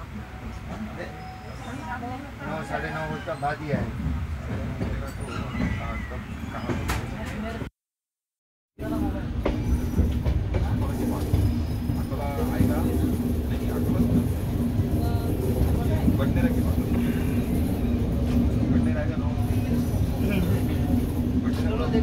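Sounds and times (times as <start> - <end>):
train wheels rumbling on rails: 0.5 - 7.7, 8.8 - 22.0
people talking: 10.5 - 22.0.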